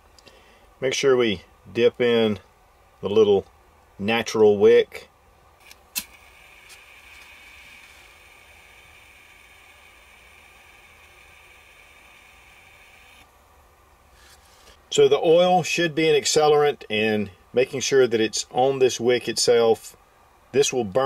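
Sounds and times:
faint steady hiss: 0:00.0 - 0:21.0
sharp click: 0:05.6 - 0:07.3.

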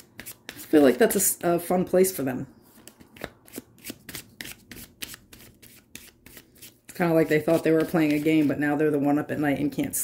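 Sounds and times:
cards being shuffled by hand: 0:02.7 - 0:08.6.

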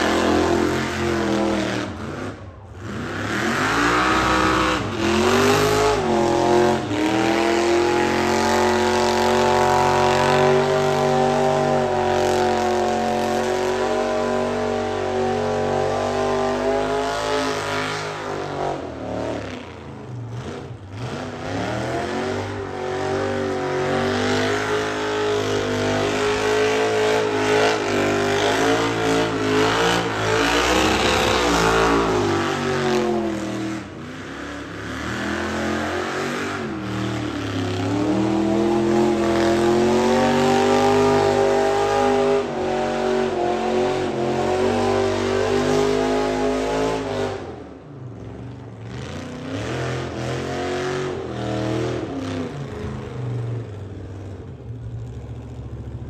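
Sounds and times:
car engine at high revs: 0:00.0 - 0:56.0.

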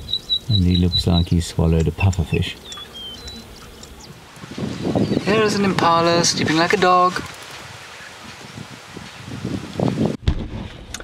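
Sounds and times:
faint wind: 0:00.0 - 0:11.0.

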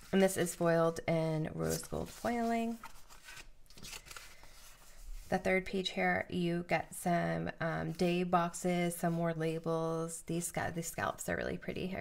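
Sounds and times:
sticker sheets rustling: 0:01.5 - 0:05.4.

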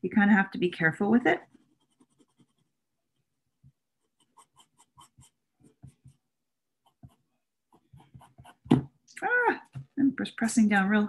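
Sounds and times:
pencil scratching on paper: 0:01.4 - 0:08.8.

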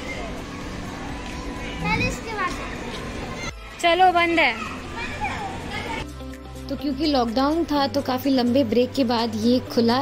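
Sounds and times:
children's voices and chatter: 0:00.0 - 0:06.2
child's voice: 0:01.8 - 0:02.7, 0:04.6 - 0:06.0.

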